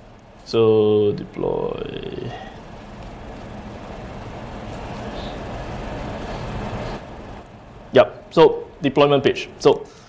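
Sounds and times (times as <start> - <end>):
room noise rumble and hiss: 0.0 - 10.0.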